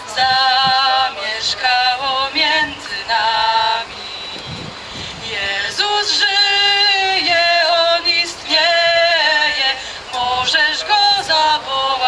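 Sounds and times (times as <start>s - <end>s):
voices singing a carol: 0.0s - 4.5s, 5.1s - 12.0s
low hum of city traffic: 0.0s - 12.0s.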